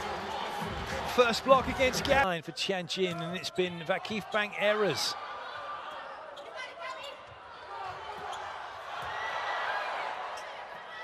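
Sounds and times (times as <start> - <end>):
indoor arena crowd noise: 0.0 - 11.0.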